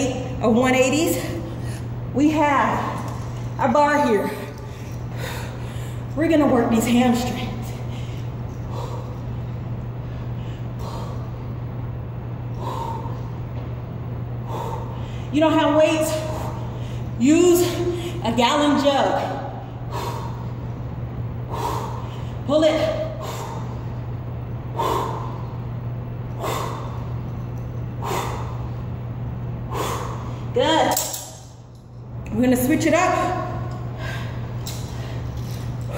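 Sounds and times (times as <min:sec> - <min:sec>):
steady low hum: 0:00.0 - 0:35.9.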